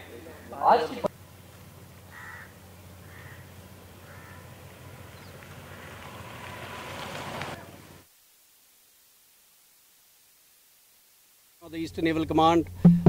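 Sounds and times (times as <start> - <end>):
slow-moving motorcycles and vehicles: 0.0 - 8.1
crows cawing: 2.0 - 7.0.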